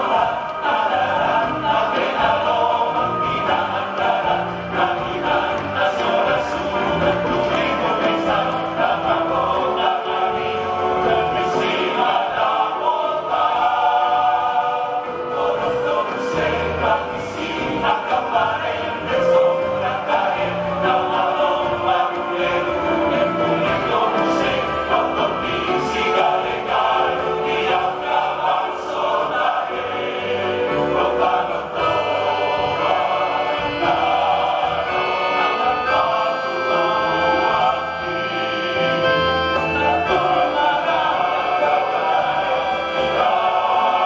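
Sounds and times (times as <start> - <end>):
men's choir singing in harmony: 0.0 - 44.0.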